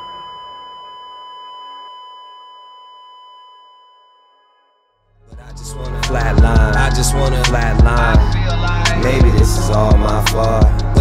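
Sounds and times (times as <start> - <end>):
heart monitor flatline beep: 0.0 - 4.2
music: 4.5 - 11.0.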